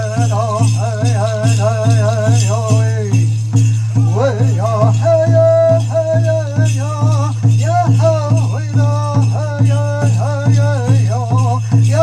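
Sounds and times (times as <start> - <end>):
bells jingling: 0.0 - 12.0
steady drum beat: 0.0 - 12.0
high wavering chanted singing: 3.8 - 9.4.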